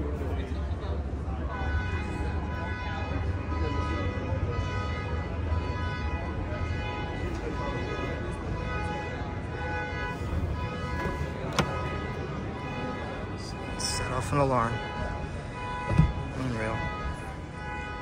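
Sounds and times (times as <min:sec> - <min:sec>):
car door latch click: 0:11.0 - 0:12.0, 0:15.9 - 0:16.2.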